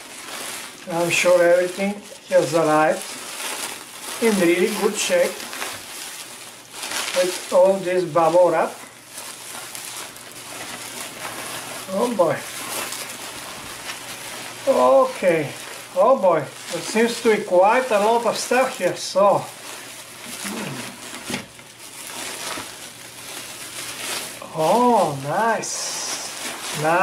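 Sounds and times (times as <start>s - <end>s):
bubble wrap rustling and crinkling: 0.0s - 27.0s.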